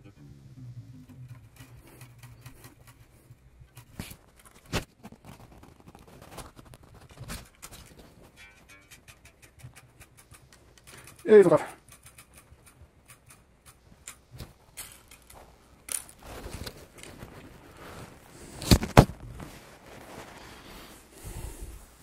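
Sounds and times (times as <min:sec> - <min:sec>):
tuning pegs clicking: 0:08.4 - 0:16.2.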